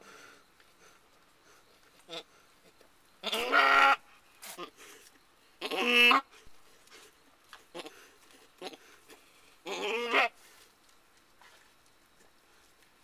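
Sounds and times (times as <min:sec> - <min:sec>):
goat bleating: 0:03.2 - 0:04.0, 0:05.6 - 0:06.2, 0:09.6 - 0:10.4.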